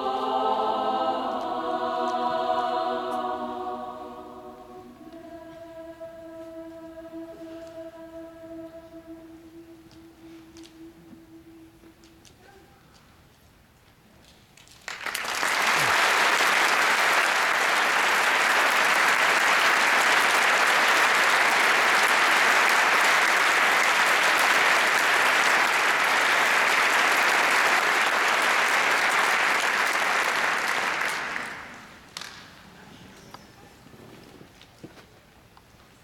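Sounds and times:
large audience applauding: 14.7s - 32.4s.

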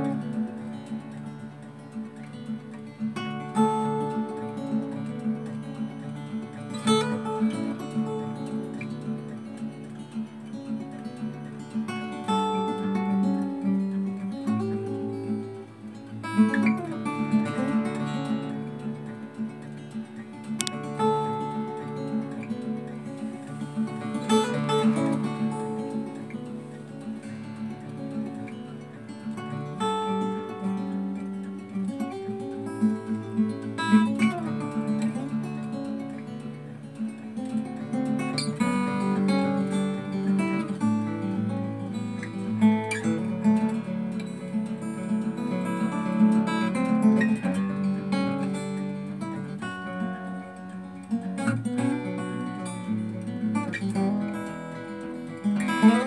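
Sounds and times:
solo acoustic guitar: 0.0s - 56.0s.

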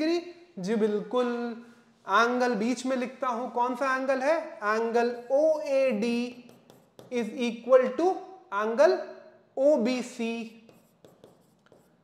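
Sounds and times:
person speaking: 0.0s - 12.0s
pen tapping on screen: 6.4s - 7.2s, 10.7s - 12.0s.

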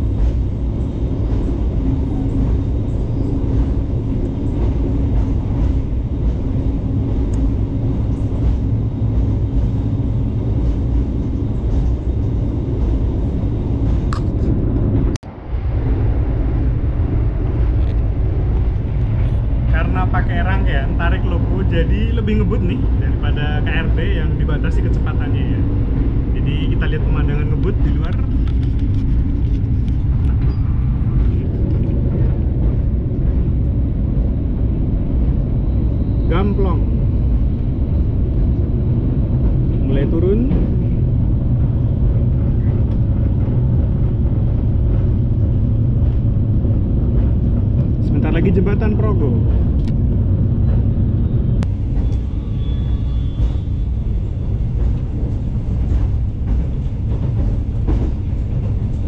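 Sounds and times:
train wheels rumbling on rails: 0.0s - 59.0s.

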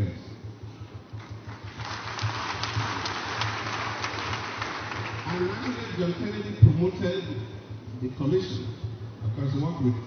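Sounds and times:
audience applauding: 1.3s - 6.2s.

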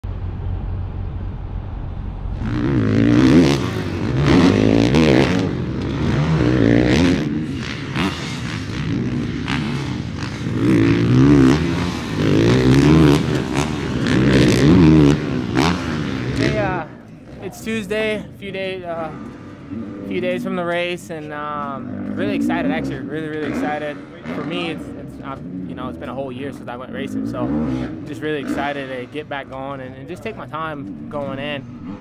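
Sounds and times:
low rumble: 0.0s - 17.0s
dirt bike engine revving: 0.0s - 32.0s.

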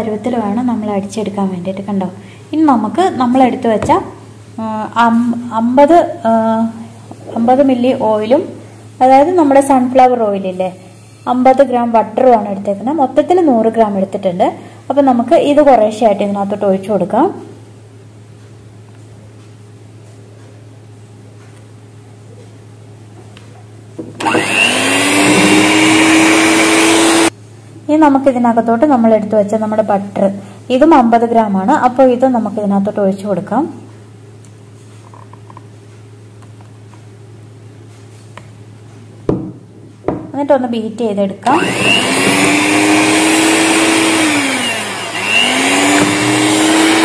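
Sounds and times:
electric hand mixer whining: 24.2s - 27.3s, 41.4s - 47.0s.

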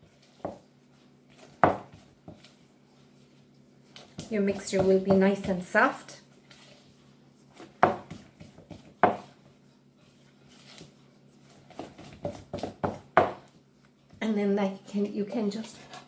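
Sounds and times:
spatula scraping dough in bowl: 0.0s - 13.9s.

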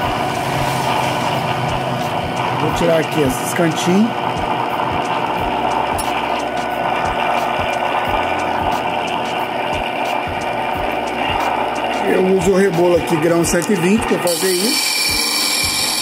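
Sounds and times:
grinding wheel humming: 0.0s - 16.0s
steel grinding on wheel: 13.6s - 16.0s.

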